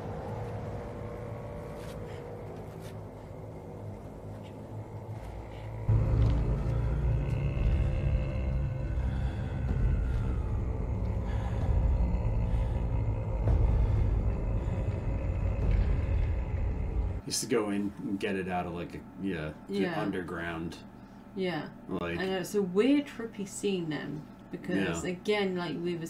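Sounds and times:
deep low rumble: 0.0 - 17.2
eerie gliding high tones: 0.0 - 17.2.

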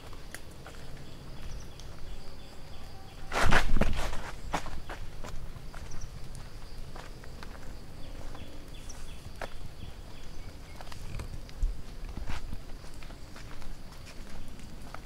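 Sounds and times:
faint high hum with chirps: 0.0 - 15.0
footsteps on wet concrete: 0.0 - 15.0.

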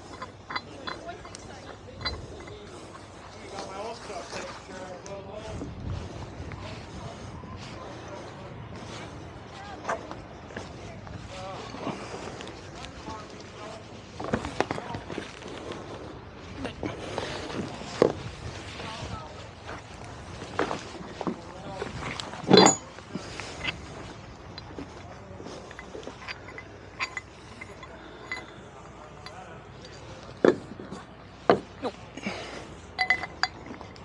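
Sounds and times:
metal shackle clinking and knocking: 0.0 - 4.5, 19.7 - 34.0.

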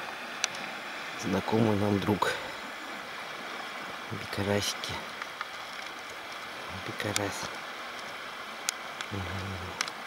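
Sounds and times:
stream water over rocks: 0.0 - 10.0
faint clicks: 7.1 - 7.3, 7.9 - 10.0.

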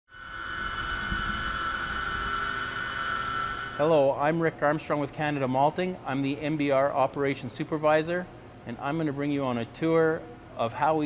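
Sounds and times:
high whine: 0.1 - 11.0
low machinery rumble: 0.1 - 11.0.

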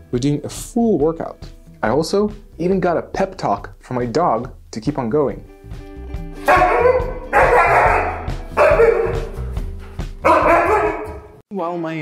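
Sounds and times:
background music: 0.0 - 12.0
husky drawn-out calls: 6.4 - 9.5, 10.2 - 11.3.

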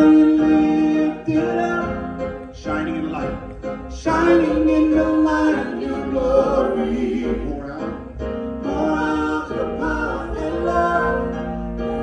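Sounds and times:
group singing worship song: 4.0 - 7.5, 8.6 - 12.0.

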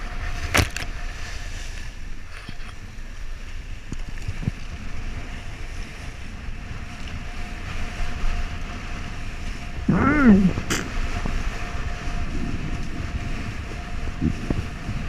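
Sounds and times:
water rushing under board: 0.0 - 15.0
wind buffeting microphone: 0.0 - 15.0.

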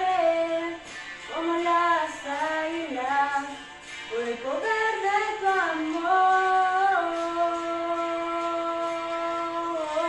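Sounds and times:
woman singing worship song: 0.0 - 10.0.

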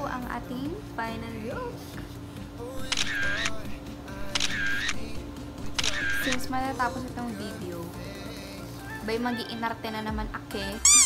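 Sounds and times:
background music: 0.0 - 11.0
camera shutter click: 2.8 - 6.6.

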